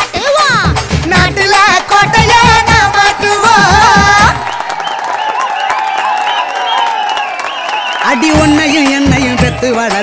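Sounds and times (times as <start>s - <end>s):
crowd cheering and clapping: 1.4s - 10.0s.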